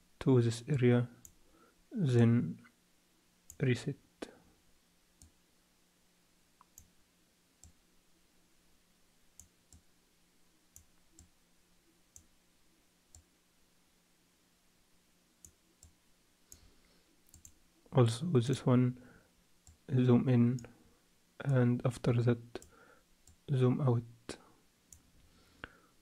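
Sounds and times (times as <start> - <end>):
faint steady hum: 0.0 - 26.0
computer mouse clicking: 6.6 - 6.9, 17.3 - 17.6.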